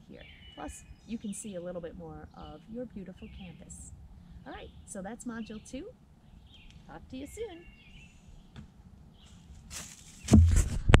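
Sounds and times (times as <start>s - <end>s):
faint bird chirps: 0.0s - 9.5s
bumps and rubbing on microphone: 8.5s - 11.0s.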